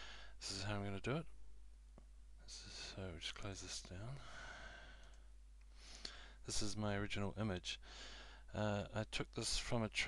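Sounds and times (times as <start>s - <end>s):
man talking: 0.4s - 1.3s, 2.5s - 4.3s, 6.5s - 7.8s, 8.5s - 10.0s.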